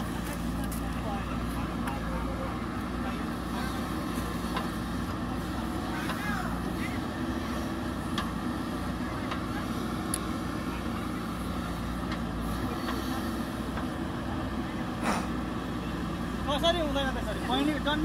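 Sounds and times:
diesel engine running: 0:00.0 - 0:18.0.

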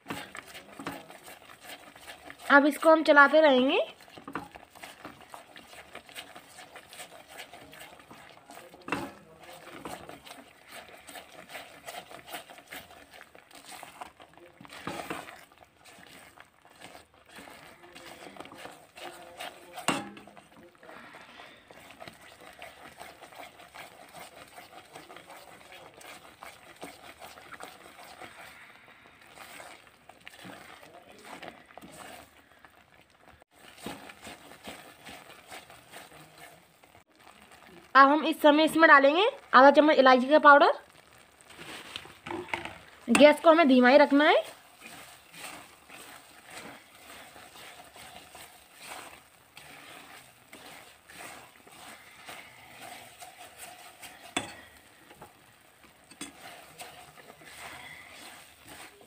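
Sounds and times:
spatula scraping thick mixture: 0:00.0 - 0:37.8, 0:38.8 - 0:59.0.

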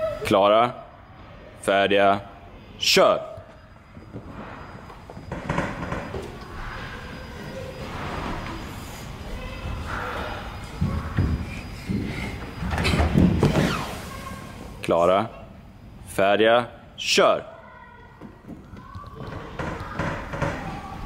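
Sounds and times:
children on play equipment: 0:00.0 - 0:01.6, 0:03.6 - 0:16.0, 0:17.5 - 0:21.0
faint voices: 0:06.1 - 0:13.0.

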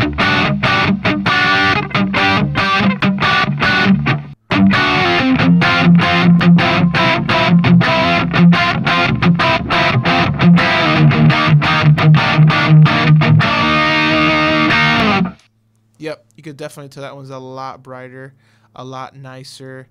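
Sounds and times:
distorted electric guitar chords: 0:00.0 - 0:15.5.

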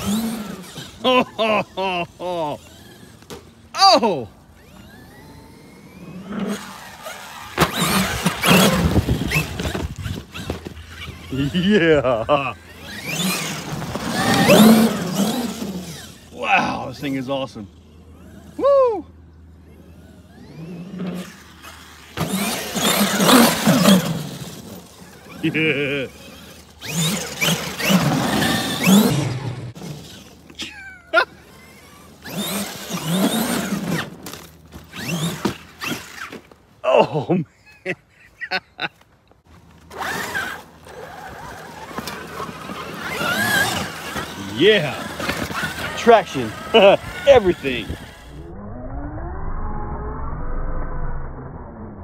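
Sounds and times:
electric motor whine: 0:00.0 - 0:01.1, 0:04.4 - 0:11.7, 0:12.5 - 0:17.2, 0:19.3 - 0:30.5, 0:31.5 - 0:36.4, 0:39.7 - 0:50.2
toy truck drivetrain noise: 0:00.0 - 0:18.6, 0:19.5 - 0:36.6, 0:39.4 - 0:48.5
tires spraying sand: 0:00.0 - 0:37.3, 0:39.5 - 0:48.4.

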